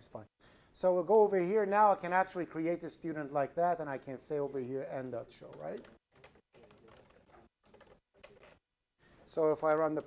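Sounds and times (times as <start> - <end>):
faint computer keyboard typing: 5.4 - 8.6.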